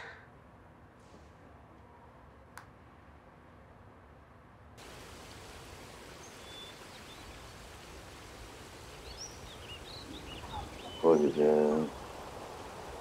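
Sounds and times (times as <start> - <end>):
small birds chirping: 4.8 - 13.0
steady background hiss: 4.8 - 13.0.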